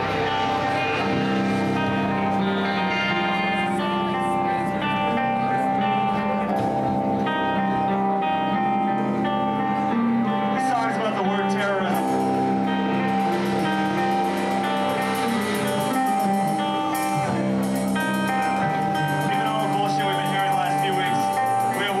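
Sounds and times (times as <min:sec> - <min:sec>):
distorted electric guitars and bass: 0:00.0 - 0:22.0
drumming: 0:12.0 - 0:22.0.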